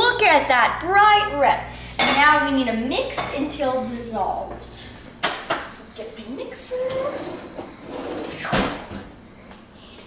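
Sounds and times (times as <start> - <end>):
kitchen drawer sliding shut: 6.9 - 9.1.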